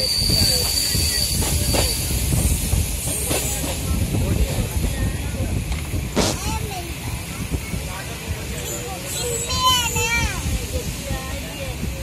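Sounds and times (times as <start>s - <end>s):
high wheel squeal: 0.0s - 3.6s
train wheels rumbling on rail: 0.0s - 12.0s.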